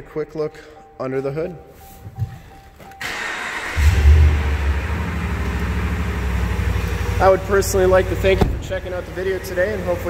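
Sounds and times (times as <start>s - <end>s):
car engine starting and idling: 3.0s - 10.0s.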